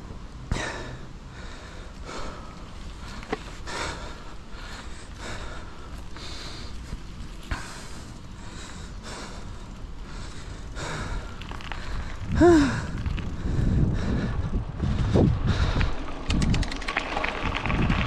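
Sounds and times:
bike clicking over bumps: 0.0 - 18.0
bike rolling on dirt trail: 0.0 - 18.0
cyclist breathing hard: 0.4 - 16.2
wind rumble on microphone: 1.9 - 18.0.

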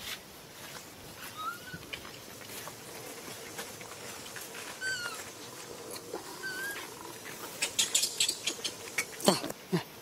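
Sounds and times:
monkey calls: 1.3 - 1.9, 4.8 - 5.3, 6.3 - 9.5.

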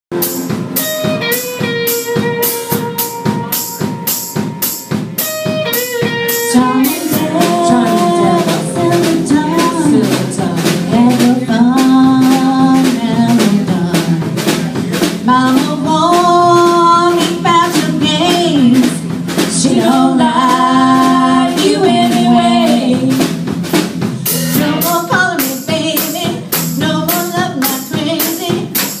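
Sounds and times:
band playing guitars bass keyboard: 0.1 - 29.0
drum beat: 0.1 - 29.0
woman singing: 6.3 - 14.6, 15.2 - 23.3, 24.2 - 29.0.

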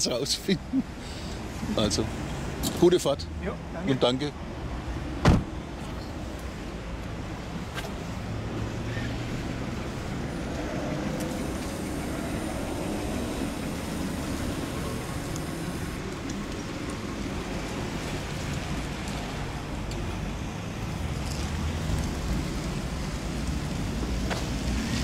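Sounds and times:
traffic noise: 0.0 - 25.0
tyres hissing on wet road: 0.8 - 4.0, 6.2 - 25.0.

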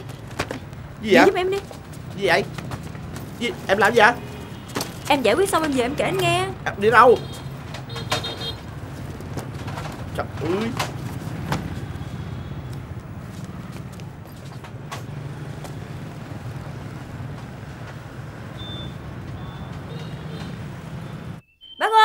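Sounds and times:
city traffic rumble: 0.0 - 21.4.

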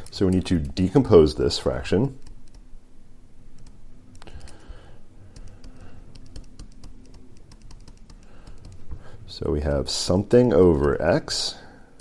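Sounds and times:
stylus tapping on tablet screen: 5.4 - 9.0.

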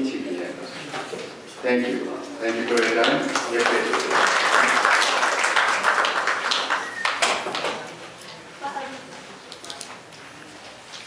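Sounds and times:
audience applause: 3.0 - 7.8.

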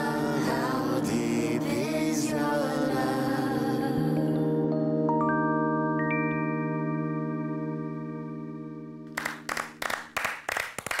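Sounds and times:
sustained keyboard chord: 0.0 - 9.2.

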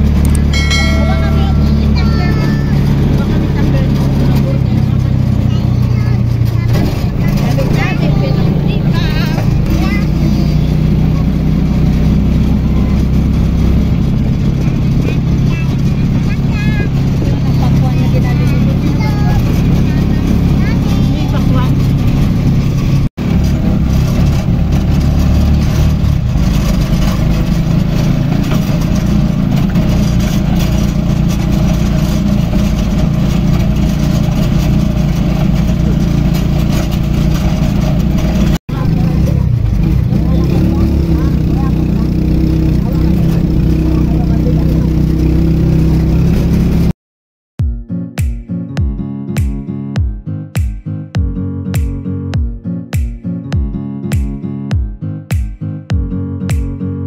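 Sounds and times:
vehicle engine and road noise: 0.0 - 47.0.

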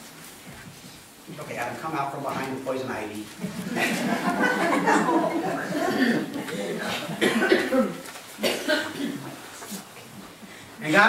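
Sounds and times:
voices: 1.3 - 9.8
person coughing: 5.6 - 9.4.

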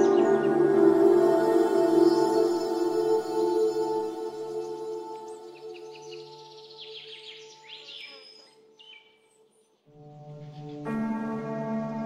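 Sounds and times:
birds chirping: 0.0 - 10.9
ambient meditation music: 0.0 - 12.0.

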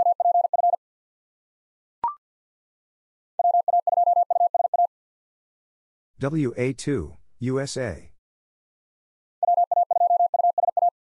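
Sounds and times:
person speaking: 6.2 - 8.2.

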